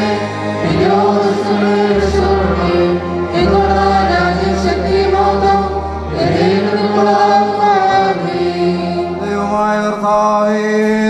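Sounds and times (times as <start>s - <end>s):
voices chanting long held notes: 0.0s - 10.5s.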